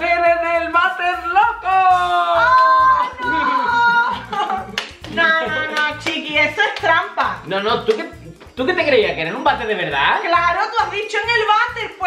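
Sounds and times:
background music with steady beat: 0.0 - 12.0
people laughing: 2.4 - 6.0.

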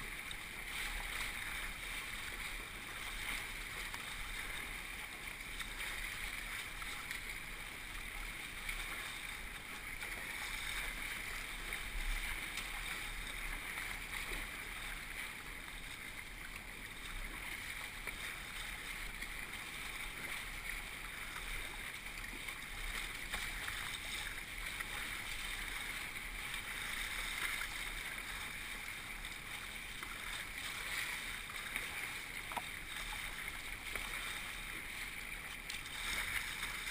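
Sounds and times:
whitewater rapids rushing and splashing: 0.0 - 36.9.

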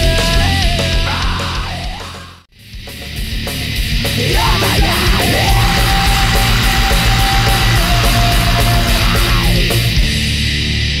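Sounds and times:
distorted guitars: 0.0 - 11.0
fast driving drums: 0.0 - 11.0.

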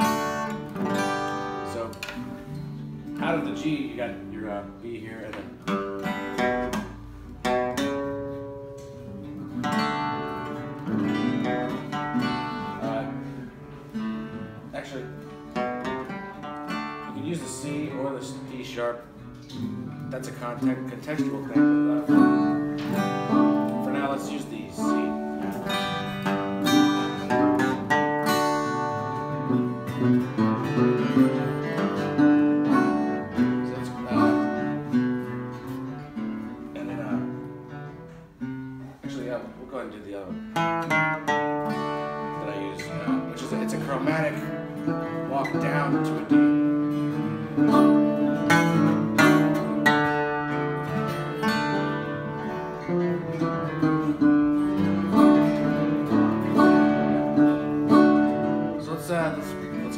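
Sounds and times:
acoustic guitar bass runs and chords: 0.0 - 59.9.

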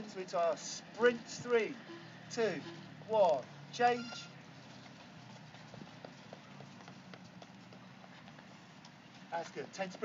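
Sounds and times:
running footsteps on stone: 4.0 - 10.0.

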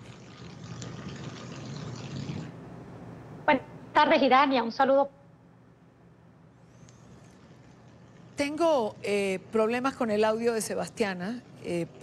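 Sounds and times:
call line hiss and hum: 6.5 - 12.0.

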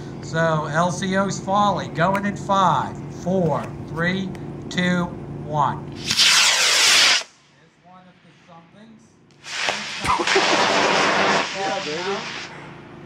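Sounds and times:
rocket motor roar: 5.9 - 7.4, 9.3 - 13.0
sharp crack: 6.0 - 7.4, 9.3 - 12.5.

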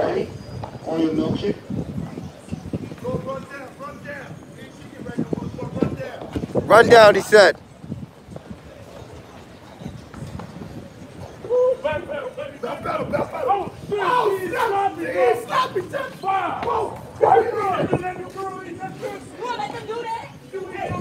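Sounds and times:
excited shouting and yelling: 6.7 - 7.6, 11.4 - 21.0.

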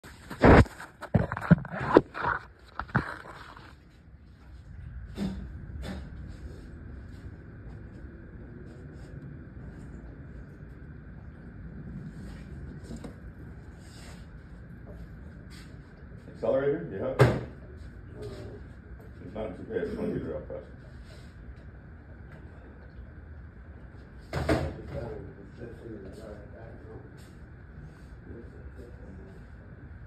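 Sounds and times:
faint steady whine: 0.0 - 30.0
low background hum: 0.0 - 30.0.

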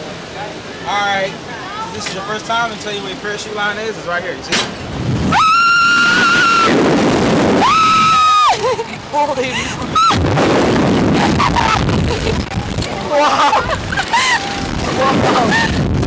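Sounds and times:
wind on microphone: 4.8 - 16.0
people screaming: 5.3 - 6.8, 7.6 - 8.8, 9.9 - 10.3, 13.0 - 15.8.

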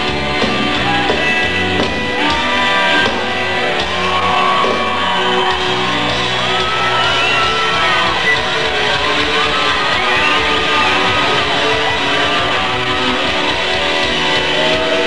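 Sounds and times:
distorted electric guitar bending: 0.0 - 15.0.

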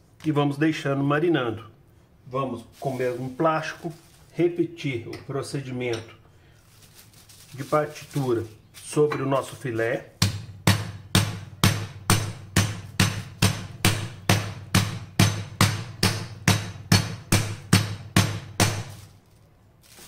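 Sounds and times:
skillet pounding meat: 10.2 - 18.9.

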